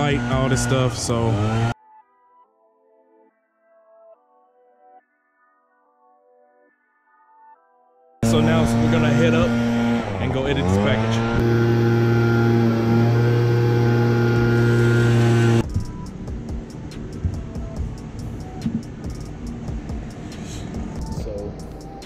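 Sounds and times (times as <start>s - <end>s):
leaf blower engine running: 0.0s - 1.8s, 8.2s - 15.7s.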